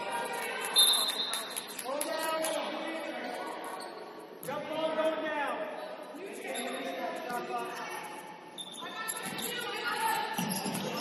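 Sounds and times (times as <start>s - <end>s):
voices shouting in gymnasium: 0.0s - 11.0s
basketball court sounds: 8.6s - 11.0s
high shoe squeak: 8.6s - 11.0s.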